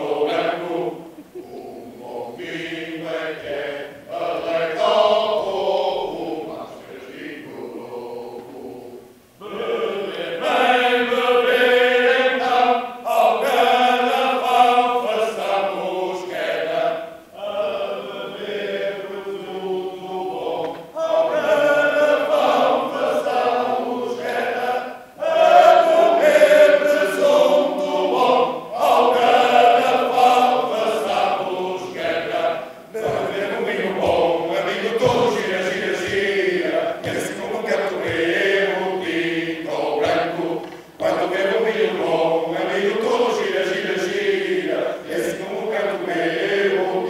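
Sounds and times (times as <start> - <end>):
male chorus singing: 0.0 - 47.0.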